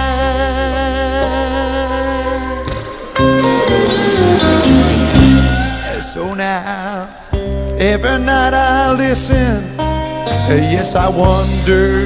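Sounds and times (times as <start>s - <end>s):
steady bass line: 0.0s - 6.6s
lead guitar: 0.0s - 12.0s
instrumental band music: 1.2s - 12.0s.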